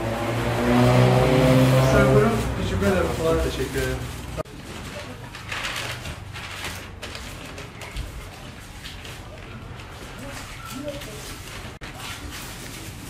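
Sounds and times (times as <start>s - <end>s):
produce rustling and handling: 1.3s - 13.0s.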